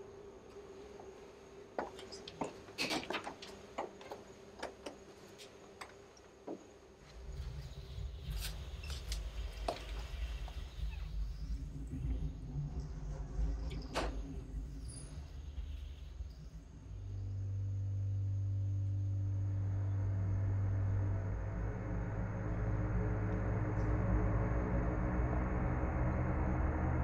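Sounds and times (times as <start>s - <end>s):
low uneven rumble: 7.0s - 27.0s
steady low drone: 7.0s - 27.0s.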